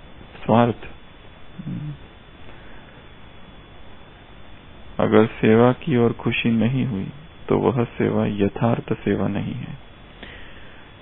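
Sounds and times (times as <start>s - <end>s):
low murmur from person: 1.6s - 2.0s
faint hiss: 1.6s - 3.2s.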